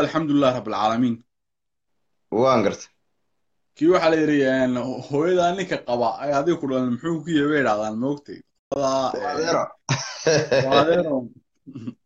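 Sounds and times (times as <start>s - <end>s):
man speaking: 3.8s - 9.8s, 10.4s - 11.9s.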